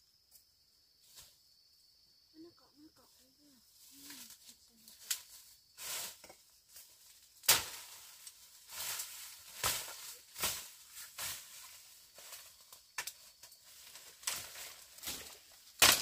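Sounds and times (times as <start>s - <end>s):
swishing and rustling leaves: 3.2s - 16.0s
machete chop: 7.4s - 7.9s, 15.8s - 16.0s.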